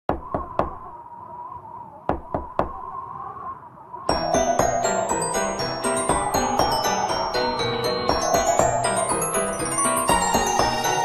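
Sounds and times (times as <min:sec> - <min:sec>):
knocking on a door: 0:00.1 - 0:00.8, 0:02.1 - 0:02.8.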